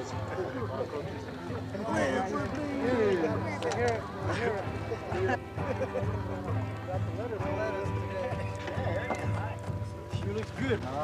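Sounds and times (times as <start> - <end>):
men chatting: 0.0 - 11.0.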